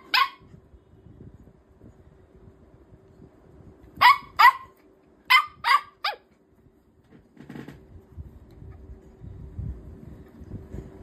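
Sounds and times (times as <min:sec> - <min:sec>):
puppy barking: 0:00.0 - 0:00.5, 0:04.0 - 0:06.4.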